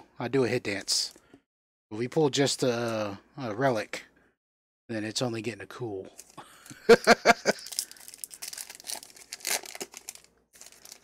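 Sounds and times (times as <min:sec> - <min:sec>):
wrapper crinkling and tearing: 0:07.5 - 0:11.0.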